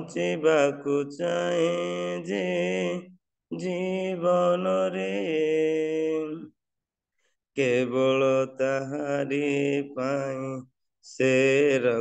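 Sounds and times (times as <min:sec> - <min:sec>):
man singing unaccompanied: 0:00.0 - 0:06.6, 0:07.6 - 0:12.0.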